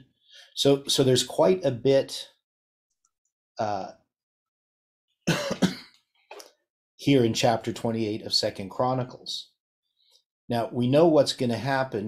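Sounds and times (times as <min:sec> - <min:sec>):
man coughing: 0:05.3 - 0:06.0.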